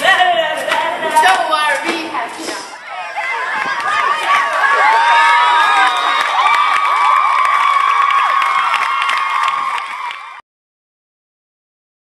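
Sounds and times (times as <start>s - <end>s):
crowd cheering and screaming: 2.6s - 10.4s.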